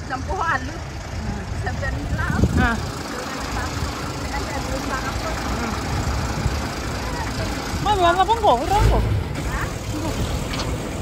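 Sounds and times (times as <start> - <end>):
faint voices of passers-by: 0.0 - 11.0
vehicles passing on road: 0.0 - 11.0.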